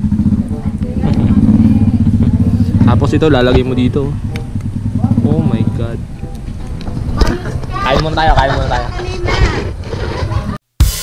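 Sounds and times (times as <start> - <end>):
motorcycle engines running: 0.0 - 10.6.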